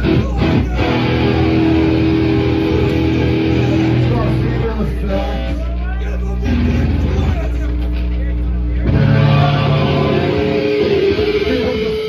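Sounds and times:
punk band playing: 0:00.0 - 0:05.6, 0:06.4 - 0:12.0.

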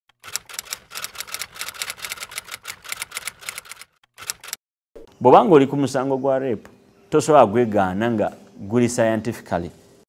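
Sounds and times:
typewriter key clicks: 0:00.2 - 0:04.6.

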